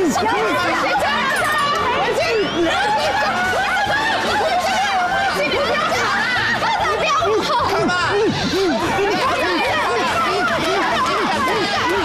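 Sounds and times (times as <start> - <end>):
people laughing and calling out: 0.0 - 12.0.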